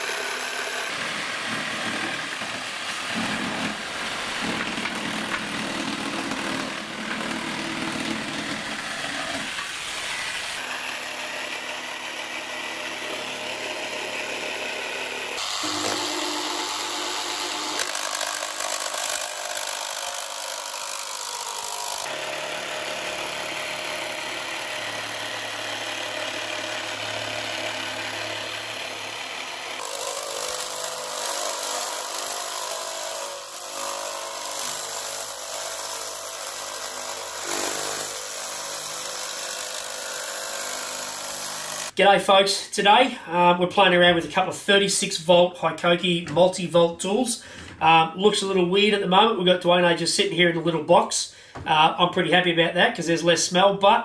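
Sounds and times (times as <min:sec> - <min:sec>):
jigsaw sawing: 0:00.0 - 0:42.0.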